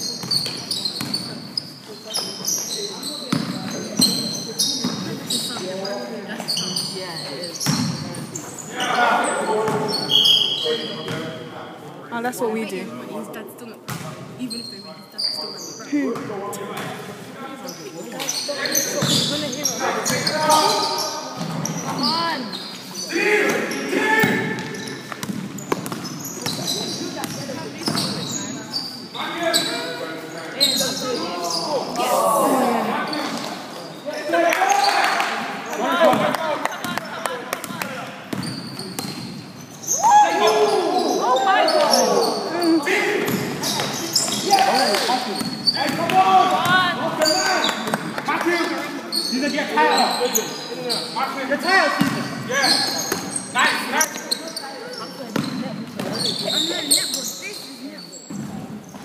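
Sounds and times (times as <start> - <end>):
basketball bouncing on court: 0.2 - 1.3, 3.3 - 4.2, 7.6 - 8.0, 13.9 - 14.1, 24.2 - 28.2, 36.1 - 39.4, 55.3 - 56.4
players calling out: 39.8 - 55.6.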